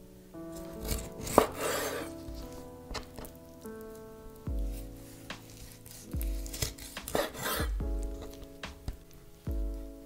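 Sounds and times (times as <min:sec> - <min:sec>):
soft background music: 0:00.0 - 0:10.0
knife chopping on wooden board: 0:00.8 - 0:03.3, 0:05.4 - 0:09.0.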